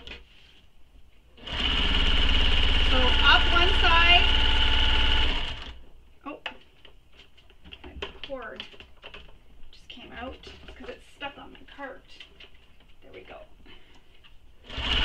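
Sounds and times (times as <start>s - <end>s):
sewing machine running: 1.4s - 5.8s, 14.6s - 15.0s.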